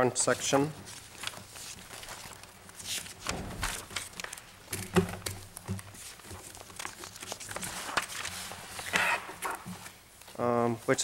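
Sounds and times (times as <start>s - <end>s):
papers rustling: 0.0s - 11.0s.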